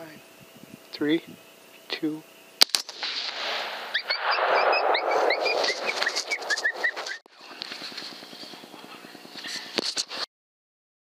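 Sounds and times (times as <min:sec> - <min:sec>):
coyote yelping: 0:03.9 - 0:07.2.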